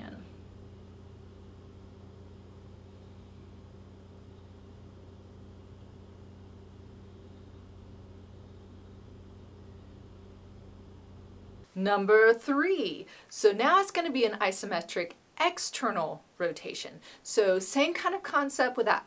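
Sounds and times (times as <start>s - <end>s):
low hum with faint hiss: 0.0s - 19.0s.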